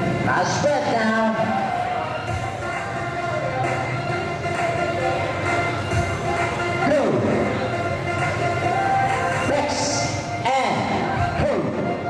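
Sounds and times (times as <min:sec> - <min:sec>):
background music over sound system: 0:00.0 - 0:12.0.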